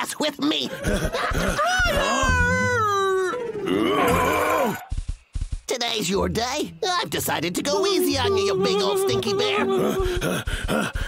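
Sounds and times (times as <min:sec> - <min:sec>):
cartoon voice grunting: 0:01.6 - 0:04.8, 0:07.7 - 0:11.0
cartoon voice laughing: 0:07.7 - 0:11.0.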